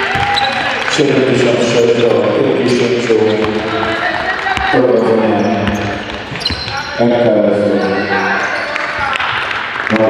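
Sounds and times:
basketball bouncing on hardwood: 0:00.1 - 0:00.7.

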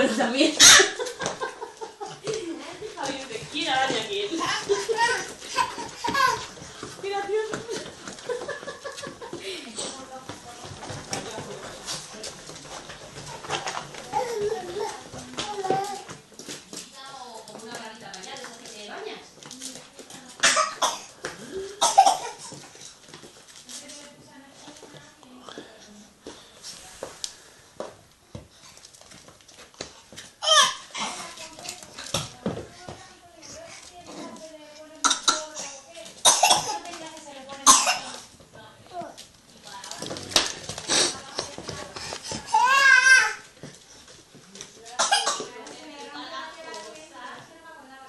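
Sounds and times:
adults talking and laughing: 0:00.8 - 0:10.0
baby babbling and laughing: 0:04.8 - 0:06.5.

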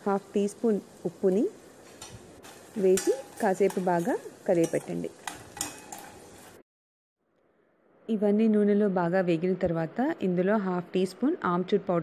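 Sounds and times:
spoon scraping steel pot: 0:02.5 - 0:06.6.

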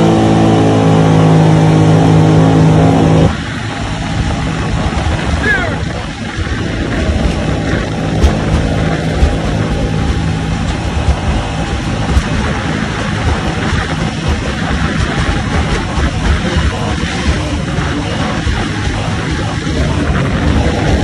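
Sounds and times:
jet boat engine running: 0:00.0 - 0:21.0
water rushing past hull: 0:00.0 - 0:21.0
wind buffeting microphone: 0:00.0 - 0:21.0
sharp knocks: 0:07.1 - 0:17.7.

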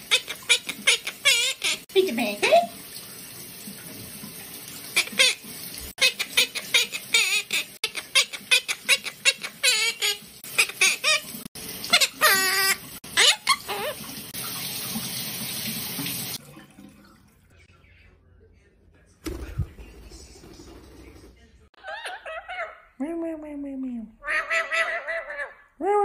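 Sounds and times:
parakeet squawking: 0:00.0 - 0:01.8, 0:04.9 - 0:05.4, 0:06.0 - 0:14.1, 0:21.8 - 0:23.0, 0:24.2 - 0:25.7
shower water running: 0:00.0 - 0:17.7, 0:19.4 - 0:21.7.

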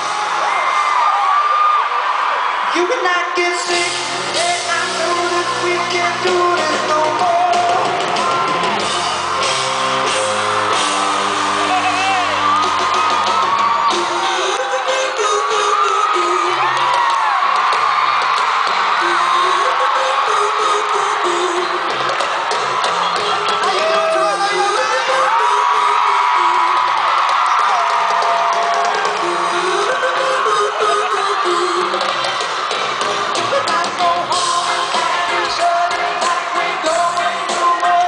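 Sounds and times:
crowd screaming and whooping: 0:00.0 - 0:38.0
live pop-rock band music: 0:02.8 - 0:38.0.

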